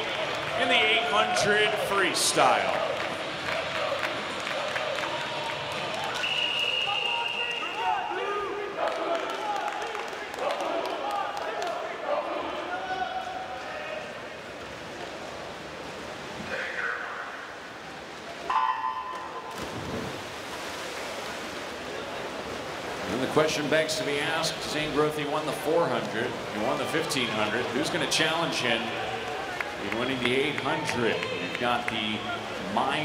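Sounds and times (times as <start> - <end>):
crowd chatter echoing: 0.0 - 14.5, 21.7 - 33.0
referee's whistle: 6.2 - 7.9.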